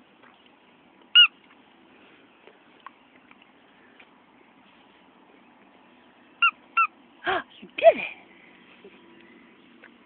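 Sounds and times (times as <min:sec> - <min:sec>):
dog toy squeak: 0:01.2 - 0:01.4, 0:06.4 - 0:06.9.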